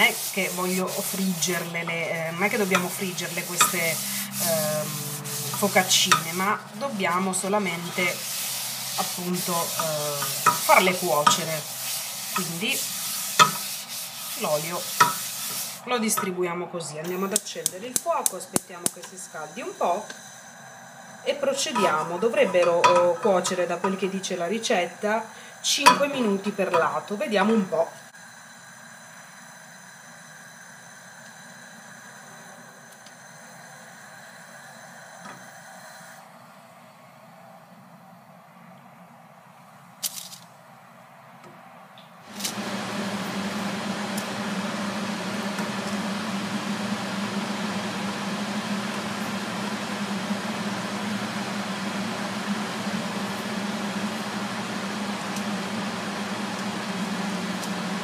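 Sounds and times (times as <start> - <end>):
flatbreads sizzling in a pan: 0.0 - 15.9.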